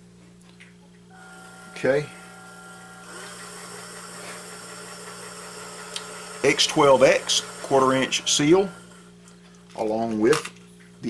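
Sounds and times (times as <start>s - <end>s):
powder dispenser motor humming: 1.1s - 9.8s.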